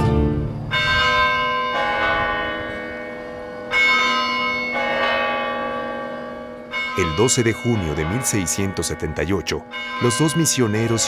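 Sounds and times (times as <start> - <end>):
church bells ringing: 0.0 - 11.0.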